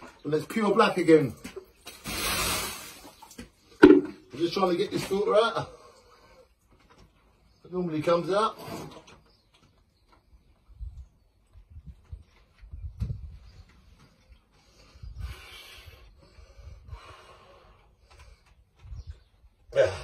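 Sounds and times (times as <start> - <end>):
water bursting from pump: 1.8 - 4.2.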